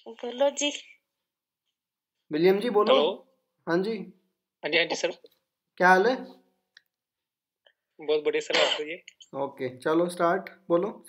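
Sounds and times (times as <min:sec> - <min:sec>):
person speaking over a call: 0:00.0 - 0:01.0, 0:04.6 - 0:05.3, 0:08.0 - 0:09.4.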